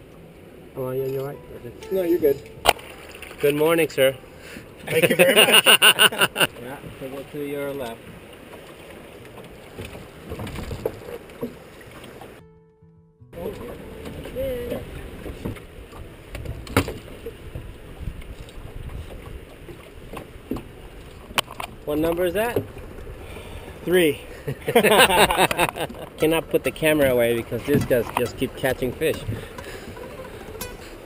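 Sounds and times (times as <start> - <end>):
river water rushing: 0.0 - 12.4, 22.7 - 31.0
knocks in boat: 9.8 - 11.6, 13.4 - 20.7, 25.4 - 30.7
wind on microphone: 13.7 - 21.4.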